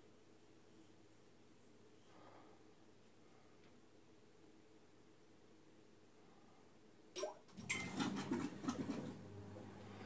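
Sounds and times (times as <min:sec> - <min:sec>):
washing machine humming: 0:07.2 - 0:10.0.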